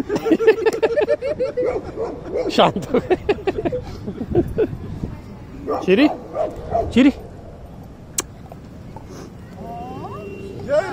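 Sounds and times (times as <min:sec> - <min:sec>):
dog barking and yipping: 0:01.6 - 0:02.6, 0:05.7 - 0:07.0.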